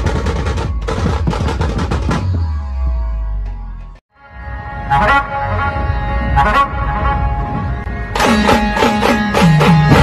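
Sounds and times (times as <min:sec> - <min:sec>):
band music: 0:02.1 - 0:10.0.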